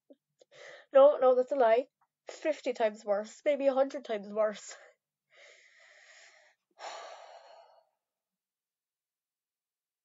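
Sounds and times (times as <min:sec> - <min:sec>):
person breathing in: 0:05.3 - 0:08.0.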